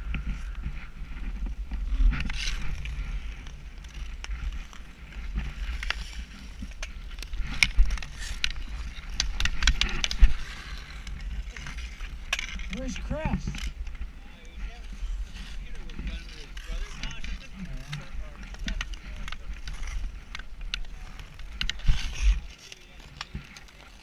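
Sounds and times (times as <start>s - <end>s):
skates scraping on ice: 0.1s - 24.0s
sticks and puck clicking: 5.1s - 13.0s, 16.7s - 24.0s.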